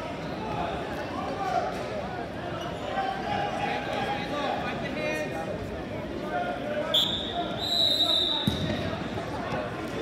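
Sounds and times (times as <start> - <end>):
crowd chatter: 0.0 - 10.0
shrill whistle blasts: 7.0 - 8.5.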